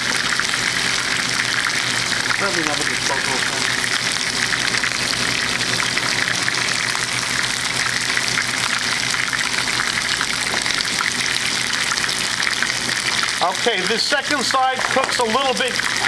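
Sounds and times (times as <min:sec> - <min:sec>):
chicken sizzling in hot oil: 0:00.0 - 0:16.0
fine crackling of frying skin: 0:00.0 - 0:16.0.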